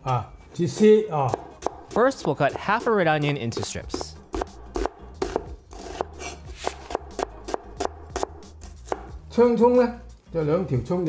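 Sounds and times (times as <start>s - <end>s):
background music: 0.0s - 11.0s
knife chopping onion on board: 0.7s - 9.2s.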